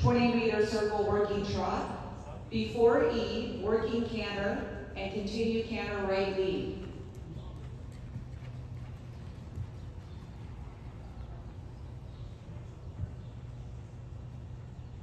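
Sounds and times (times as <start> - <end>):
horse hoofbeats on sand: 6.0 - 15.0.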